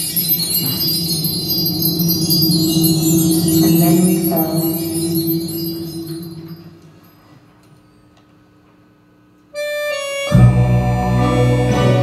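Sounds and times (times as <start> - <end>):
mallet keyboards ringing: 0.0 - 8.2.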